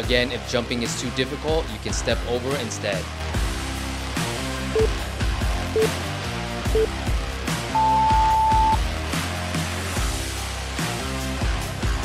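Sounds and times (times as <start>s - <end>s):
background music with steady beat: 0.0s - 12.0s
interval timer beeping: 4.8s - 5.0s, 5.8s - 6.0s, 7.8s - 8.8s.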